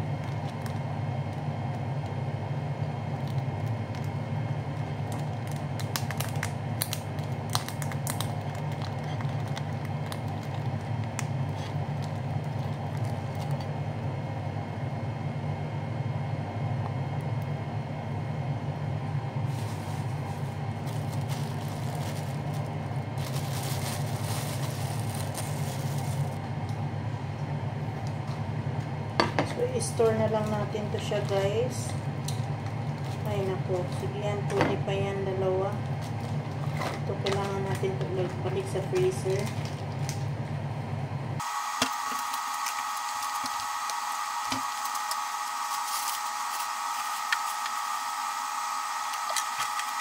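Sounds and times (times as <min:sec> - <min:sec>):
kitchen appliance fan hum: 0:00.0 - 0:50.0
plastic wrap crinkling: 0:03.1 - 0:13.7, 0:19.4 - 0:26.5, 0:30.4 - 0:34.1, 0:35.8 - 0:40.3, 0:41.4 - 0:50.0.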